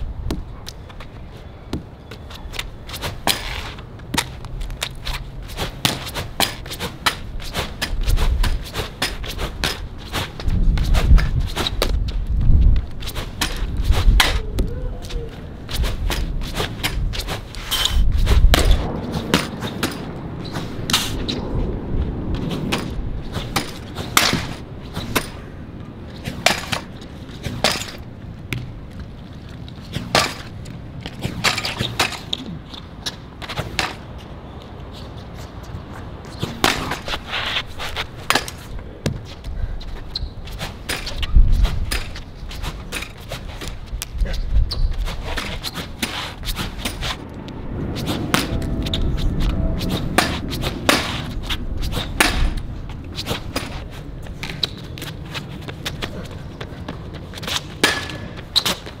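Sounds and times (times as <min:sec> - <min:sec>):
low rumble: 0:18.0 - 0:26.1, 0:46.5 - 0:54.4.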